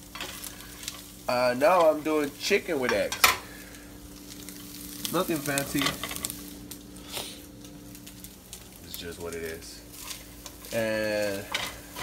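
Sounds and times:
food sizzling in a frying pan: 0.0 - 12.0
steady low hum: 0.0 - 12.0.

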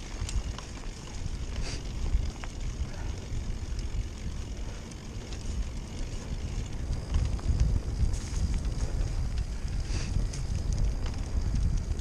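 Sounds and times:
small clicks: 0.0 - 2.6
wind buffeting microphone: 0.0 - 12.0.

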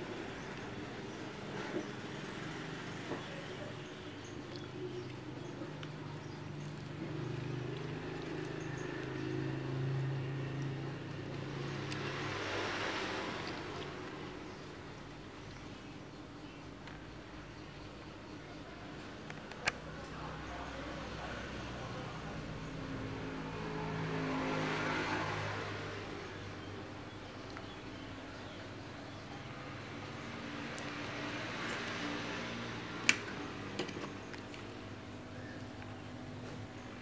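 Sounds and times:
vehicle engine passing by: 5.0 - 15.2, 20.1 - 28.6, 29.4 - 33.7.

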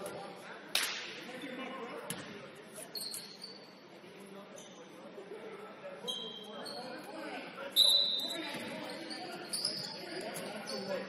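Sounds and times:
high shoe squeak: 2.8 - 3.8, 6.0 - 7.1, 7.7 - 11.0.

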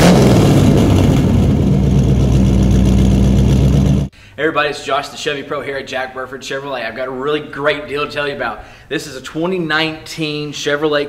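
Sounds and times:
car engine revving: 0.0 - 4.1.

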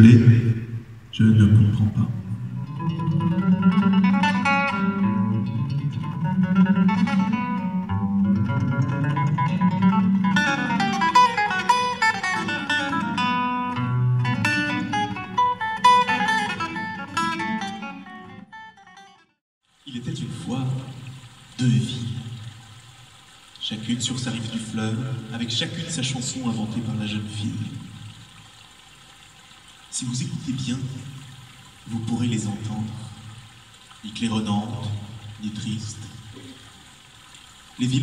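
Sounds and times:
solo guitar playing: 2.2 - 19.4.

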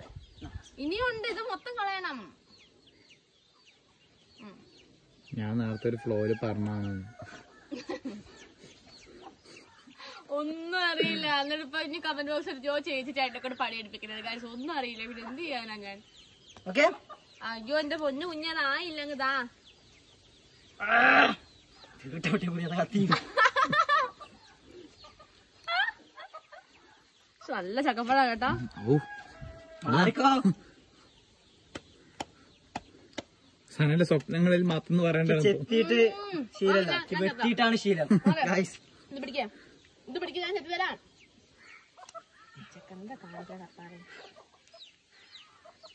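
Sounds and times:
chicken clucking: 23.8 - 27.4, 41.2 - 45.9
faint bird chirps: 35.2 - 45.9.

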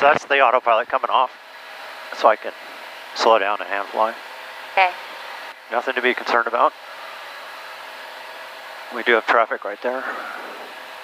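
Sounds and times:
airplane cabin drone: 0.0 - 11.0.

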